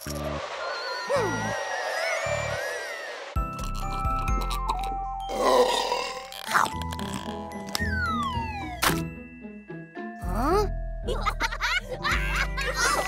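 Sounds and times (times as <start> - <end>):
gliding tone sound effects: 0.1 - 3.4
cartoon music: 1.1 - 9.2.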